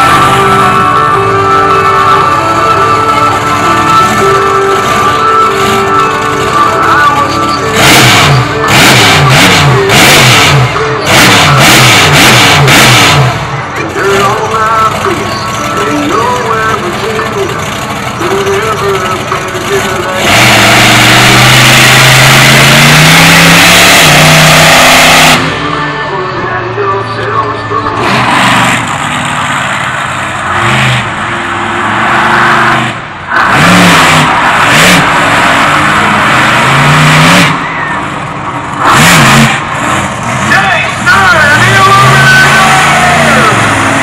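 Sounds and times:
monster truck engines revving: 0.0s - 44.0s.

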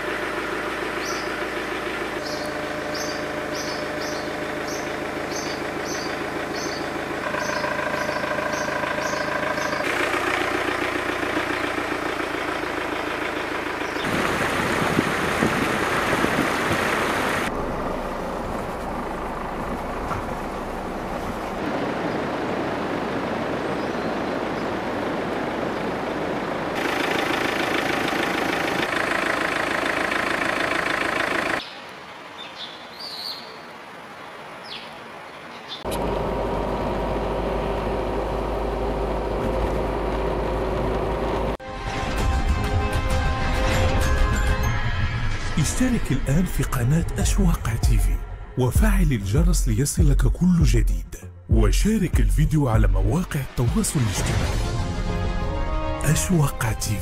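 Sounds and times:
vehicle engine and traffic: 0.0s - 55.4s
bird chirping: 1.0s - 1.4s, 2.1s - 9.9s, 13.8s - 14.1s, 31.6s - 33.7s, 34.6s - 35.9s.

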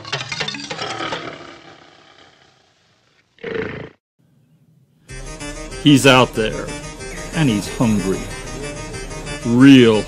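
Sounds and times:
music chord: 5.1s - 10.0s.

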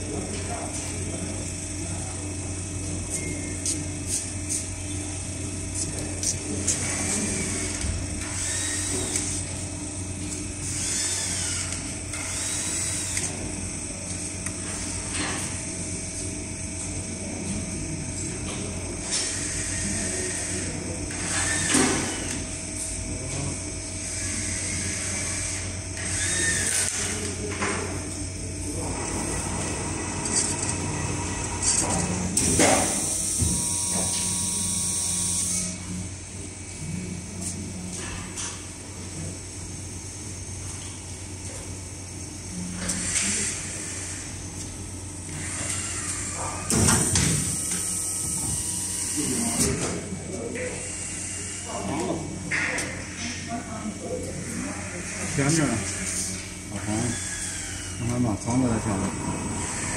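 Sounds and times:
lamination machine humming: 0.0s - 59.9s.

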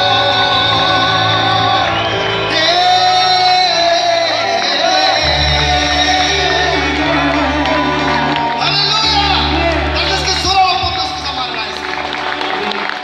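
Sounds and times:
electronic keyboard playing: 0.0s - 13.0s
person singing: 0.0s - 13.0s
heavy bass line: 5.1s - 11.8s.

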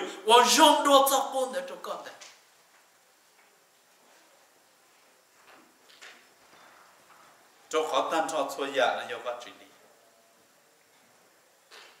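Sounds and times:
man speaking: 0.0s - 2.2s, 7.7s - 9.8s.

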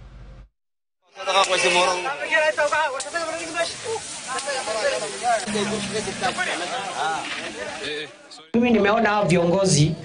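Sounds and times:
people talking: 1.1s - 10.0s
steady background hiss: 1.2s - 8.5s.

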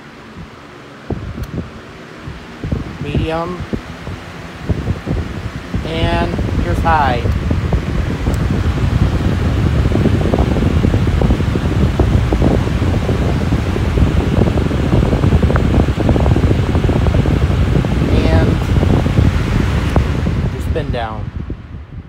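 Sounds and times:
box fan running: 0.0s - 22.0s.

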